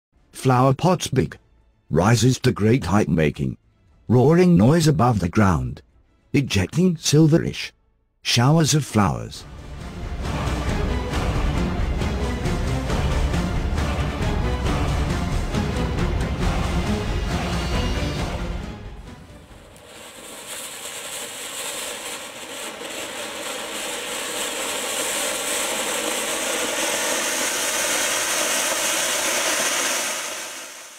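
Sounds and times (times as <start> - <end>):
background music: 0.2 - 8.0, 9.4 - 19.8
firework sparks hissing: 19.5 - 30.9.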